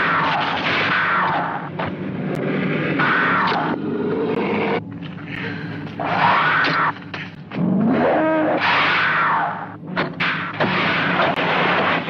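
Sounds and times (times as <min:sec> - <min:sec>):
film music and effects: 0:00.0 - 0:12.0
dinosaur roaring: 0:07.5 - 0:10.2.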